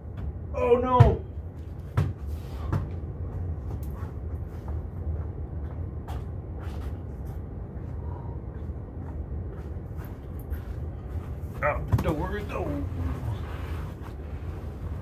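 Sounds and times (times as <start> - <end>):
steady low rumble: 0.0 - 15.0.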